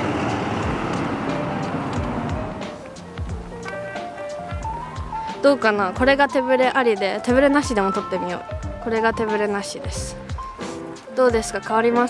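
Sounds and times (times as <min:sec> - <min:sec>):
vehicle passing on street: 0:00.0 - 0:04.4
faint background music: 0:00.0 - 0:12.0.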